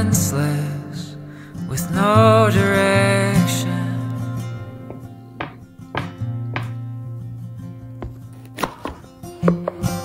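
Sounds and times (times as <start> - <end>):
guitar music: 0.0 - 10.0
knife knocking on cutting board: 4.9 - 6.8.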